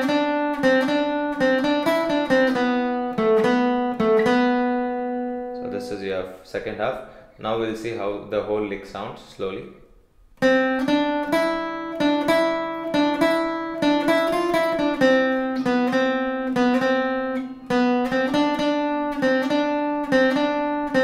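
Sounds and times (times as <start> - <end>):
acoustic guitar picked notes: 0.0 - 7.3, 10.4 - 21.0.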